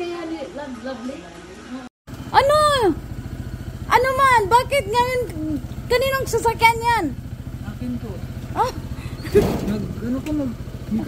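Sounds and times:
motor scooter engine idling: 2.1 - 11.0.

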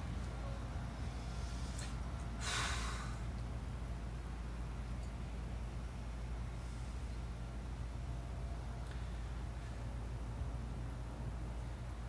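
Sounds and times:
man breathing out hard: 1.2 - 3.3.

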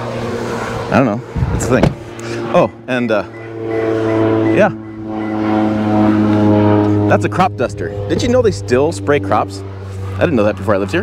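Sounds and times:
propeller airplane droning overhead: 0.0 - 11.0.

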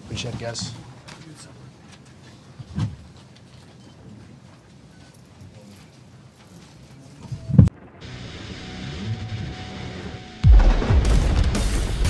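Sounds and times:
music: 7.8 - 12.0
deep boom hit: 10.4 - 12.0.

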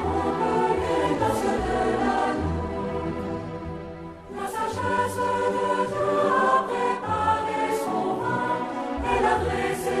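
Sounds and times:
choir singing sustained notes: 0.0 - 10.0.

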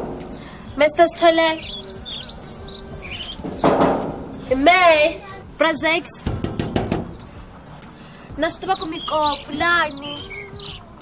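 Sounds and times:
small birds chirping: 0.0 - 5.4, 6.7 - 11.0.

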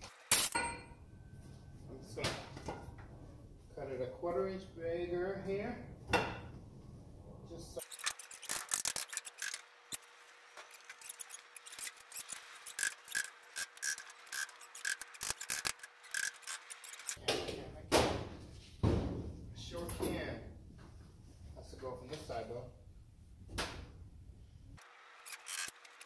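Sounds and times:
tools clicking and tapping: 10.7 - 17.2.

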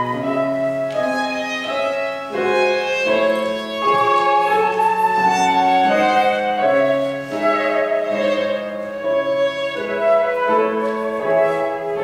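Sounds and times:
flute: 0.0 - 12.0
piano: 0.0 - 12.0
violin: 0.0 - 12.0.

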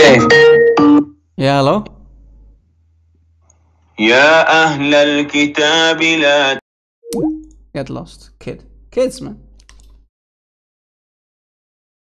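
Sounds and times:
man chanting melodic recitation: 4.0 - 6.6.

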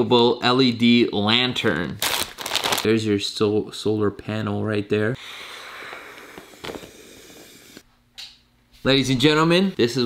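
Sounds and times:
breath blown into inflatable valve: 5.2 - 7.8.

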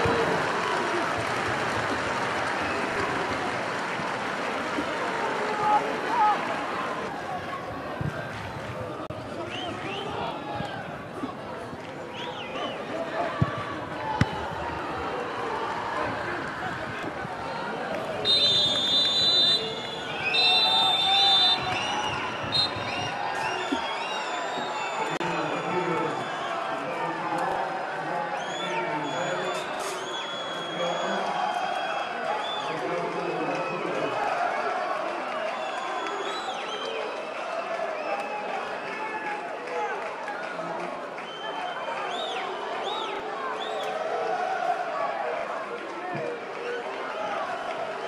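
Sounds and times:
stadium crowd noise: 0.0 - 48.0
players shouting: 12.0 - 28.1
referee's whistle blasts: 18.2 - 26.4, 28.4 - 31.3.

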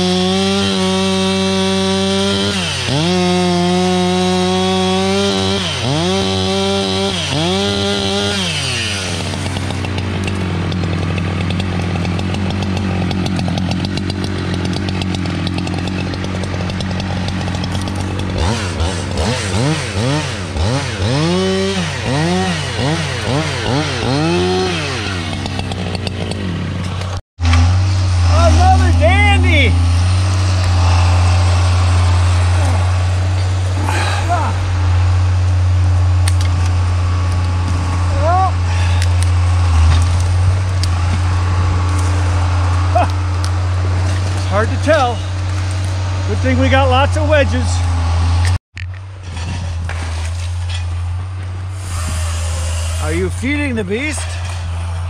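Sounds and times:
chainsaw cutting logs: 0.0 - 55.0
deeper engine with rising whine: 1.2 - 55.0.

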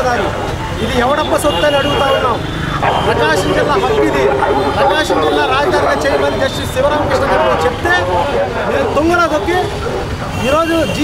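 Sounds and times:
low rumble of road traffic: 0.0 - 11.0
man speaking: 0.0 - 11.0.

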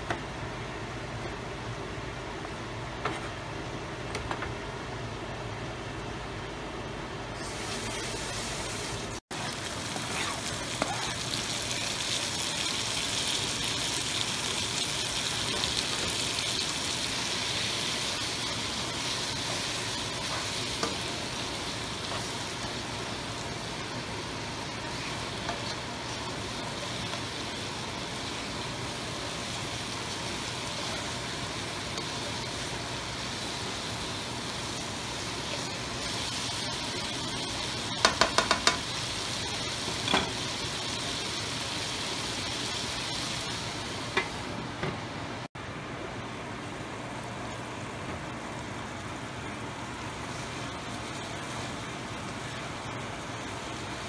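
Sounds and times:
food sizzling in a wok: 7.4 - 44.6, 48.3 - 54.0.

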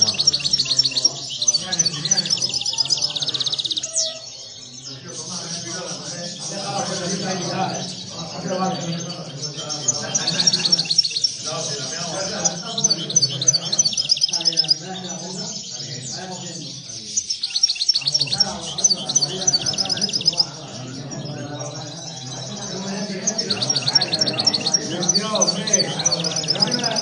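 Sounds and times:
goldfinches twittering trills: 0.0 - 27.0.

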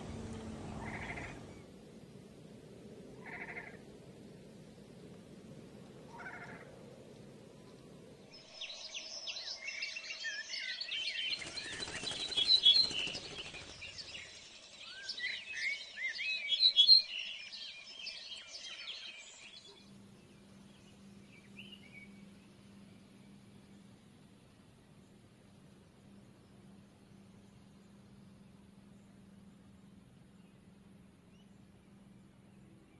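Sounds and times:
songbirds chirping: 0.0 - 32.9.

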